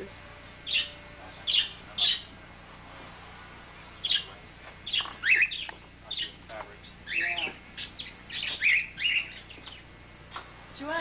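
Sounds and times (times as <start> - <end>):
parakeets chirping: 0.0 - 11.0.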